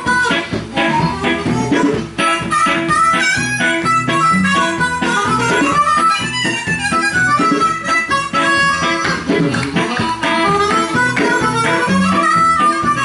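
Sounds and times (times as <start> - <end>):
harmonica solo: 0.0 - 13.0
strummed electric guitar: 0.0 - 13.0.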